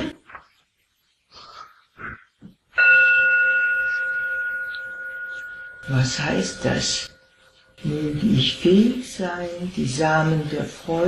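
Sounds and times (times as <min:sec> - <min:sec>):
bell ringing: 0:02.8 - 0:10.4.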